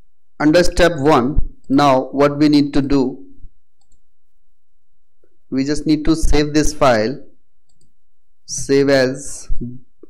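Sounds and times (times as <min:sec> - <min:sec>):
person speaking: 0:00.4 - 0:03.5, 0:05.5 - 0:07.4, 0:08.4 - 0:10.0
computer mouse click: 0:03.8 - 0:04.1, 0:07.7 - 0:08.0.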